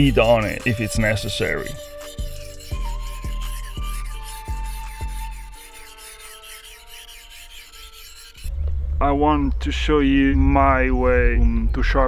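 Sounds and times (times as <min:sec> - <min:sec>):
background music: 0:00.0 - 0:05.9
knife scraping on sharpening stone: 0:00.6 - 0:08.5.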